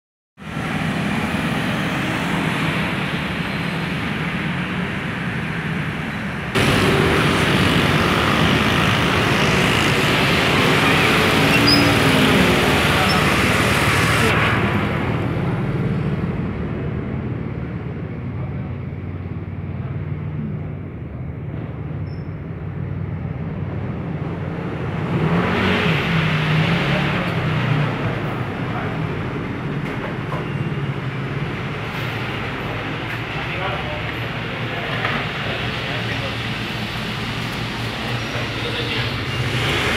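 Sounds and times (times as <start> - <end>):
scooters and cars passing: 0.4 - 39.9.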